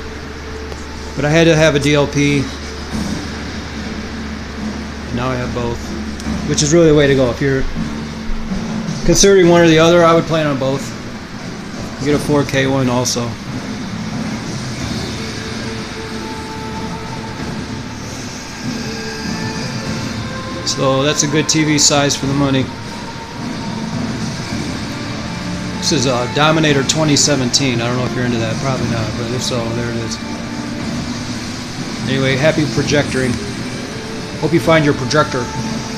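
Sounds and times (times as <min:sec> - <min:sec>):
faint hum tones: 0:00.0 - 0:35.9
film soundtrack low rumble: 0:00.0 - 0:35.9
projector cooling fan whirring: 0:00.0 - 0:35.9.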